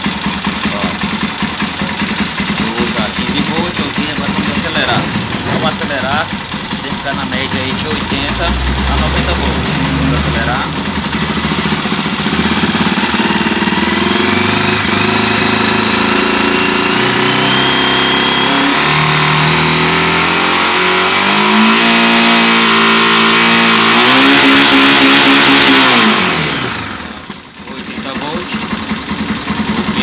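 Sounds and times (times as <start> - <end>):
motorcycle engine revving: 0.0 - 30.0.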